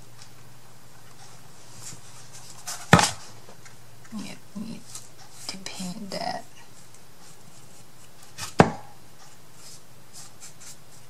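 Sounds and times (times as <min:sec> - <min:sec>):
sharp knock of wooden box: 0:08.6 - 0:08.9.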